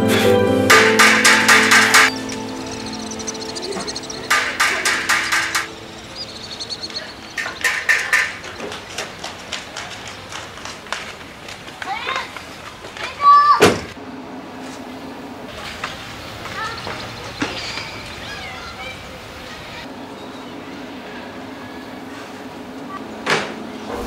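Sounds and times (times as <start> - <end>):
sad string music: 0.0 - 7.3
hammer striking iron on anvil: 0.7 - 2.5, 4.3 - 5.7.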